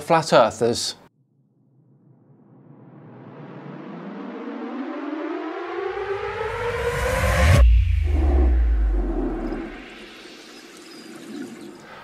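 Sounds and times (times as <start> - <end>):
rising pitched whine: 1.8 - 11.7
deep rumble: 5.8 - 10.2.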